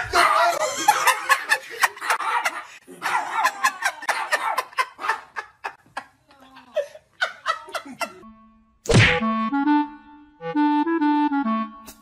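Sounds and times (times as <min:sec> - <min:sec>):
people laughing: 0:00.0 - 0:08.2
light playful music: 0:08.0 - 0:12.0
loud whack: 0:08.8 - 0:09.3.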